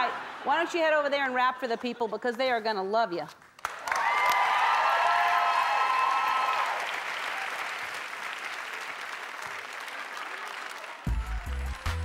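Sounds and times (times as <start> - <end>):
audience applauding: 3.6 - 12.0
audience cheering: 3.8 - 12.0.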